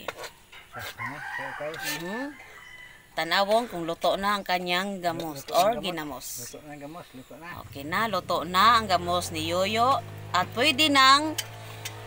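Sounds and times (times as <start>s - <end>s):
rooster crowing: 0.7s - 3.2s.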